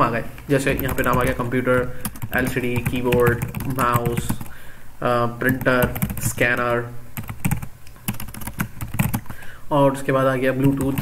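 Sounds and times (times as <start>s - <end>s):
man talking: 0.0s - 4.4s, 5.0s - 7.0s, 9.7s - 11.0s
keyboard typing clicks: 7.2s - 9.4s.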